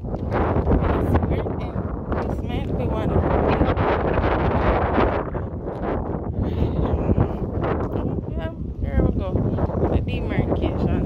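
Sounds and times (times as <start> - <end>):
wind buffeting microphone: 0.0 - 11.0
faint voices: 6.4 - 8.6.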